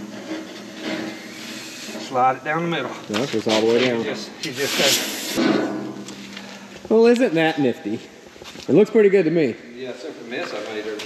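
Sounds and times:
metal scraping on metal: 0:00.0 - 0:06.0.

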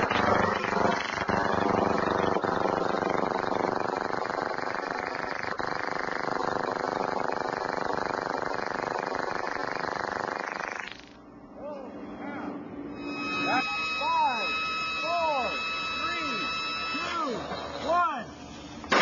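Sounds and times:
steady pulsing buzz: 0:00.0 - 0:18.9.

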